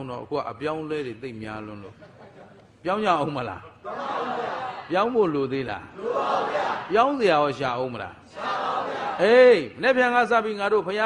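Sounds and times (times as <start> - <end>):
man preaching: 0.0 - 2.0, 2.8 - 6.0, 6.8 - 8.3, 9.2 - 11.0.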